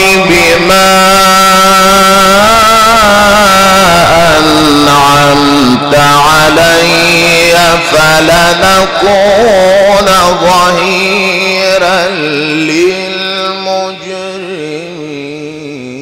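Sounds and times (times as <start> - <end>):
man chanting into microphone: 0.0 - 16.0.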